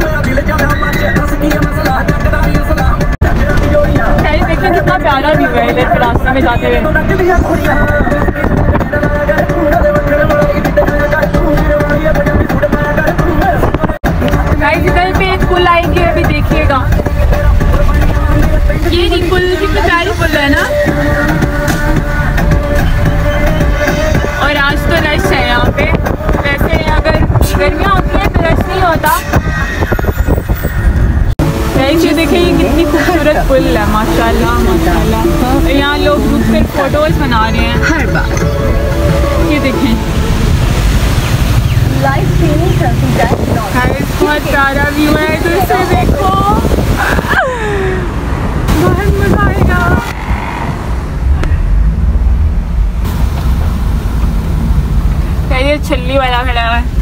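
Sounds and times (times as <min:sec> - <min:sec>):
car road and engine rumble: 0:00.0 - 0:57.0
person speaking: 0:31.7 - 0:40.2.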